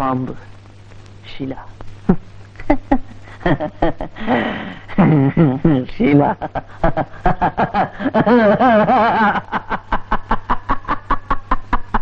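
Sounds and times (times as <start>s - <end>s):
loud rapid laughter: 6.6s - 12.0s.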